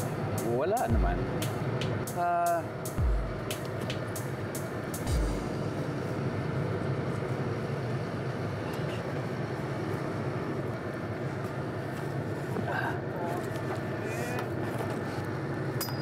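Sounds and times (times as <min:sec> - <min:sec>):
bus engine rumble: 0:00.0 - 0:15.8
deep boom: 0:05.1 - 0:05.6.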